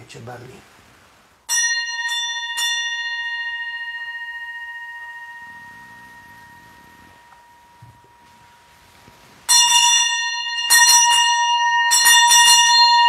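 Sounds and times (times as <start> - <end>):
bell ringing: 1.5 - 13.0.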